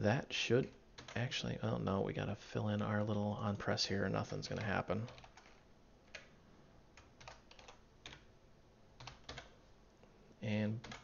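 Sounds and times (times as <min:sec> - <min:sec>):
computer keyboard keystrokes: 0:00.7 - 0:01.2, 0:04.5 - 0:06.3, 0:07.0 - 0:08.3, 0:09.0 - 0:09.5.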